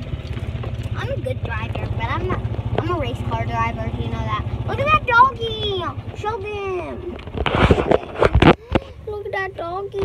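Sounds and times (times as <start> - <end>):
golf cart rumbling: 0.0 - 10.0
child's high-pitched voice: 1.0 - 7.2, 8.5 - 10.0.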